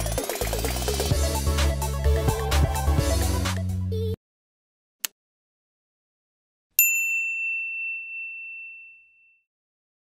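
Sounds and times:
bright bell ding: 6.8 - 9.5.

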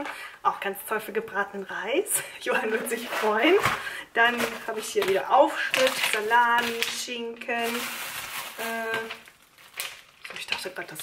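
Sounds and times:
plastic packs crinkling: 2.4 - 11.0.

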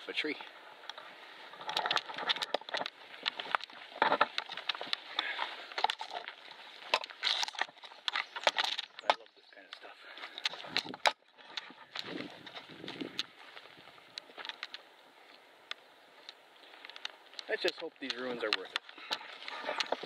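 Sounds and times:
foliage rustling: 0.0 - 20.0
footsteps through undergrowth: 0.0 - 20.0
twigs crackling and snapping: 0.2 - 20.0.

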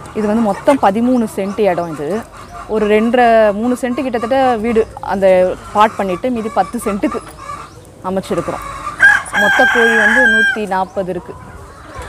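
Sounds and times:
woman talking: 0.0 - 7.3, 8.0 - 8.7, 9.3 - 11.4
chickens clucking: 0.0 - 12.0.

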